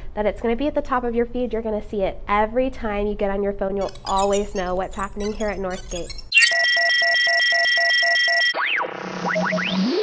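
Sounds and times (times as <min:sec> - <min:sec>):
high tone with rapid beeps: 0:03.8 - 0:10.0
swooping electronic tones: 0:03.8 - 0:10.0.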